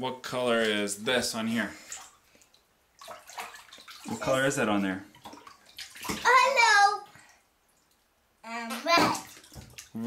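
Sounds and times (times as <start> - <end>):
bathwater splashing: 0.4 - 10.0.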